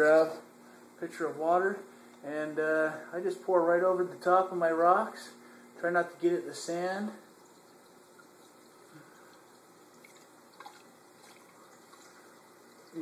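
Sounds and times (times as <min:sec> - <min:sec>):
water drips: 0:07.3 - 0:13.0.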